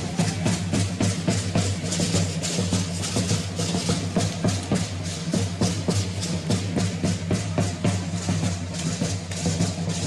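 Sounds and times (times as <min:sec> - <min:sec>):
drum beating fast rhythm: 0:00.0 - 0:10.0.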